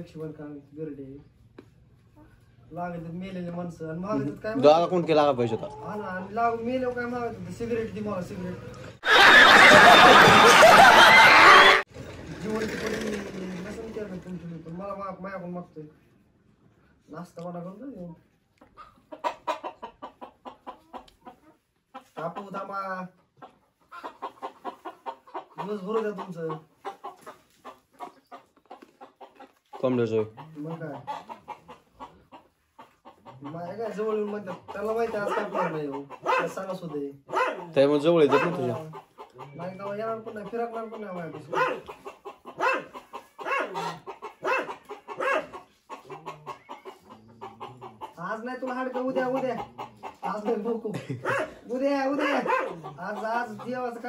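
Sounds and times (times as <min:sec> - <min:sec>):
hen clucking: 0:02.1 - 0:11.8, 0:17.6 - 0:54.0.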